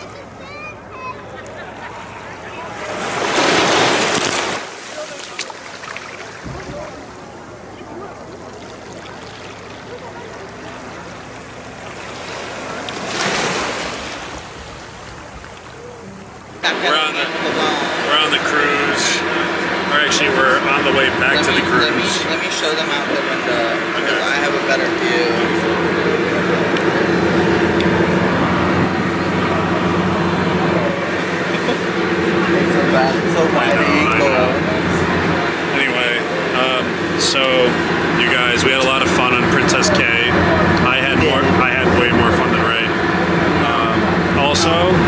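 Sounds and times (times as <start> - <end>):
small waves lapping: 0.0 - 39.4
boat engine droning: 0.0 - 45.0
rush of water: 2.1 - 45.0.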